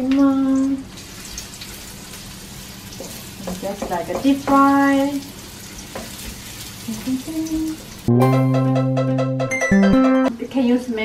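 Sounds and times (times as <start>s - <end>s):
shallots sizzling in oil: 0.0s - 8.1s.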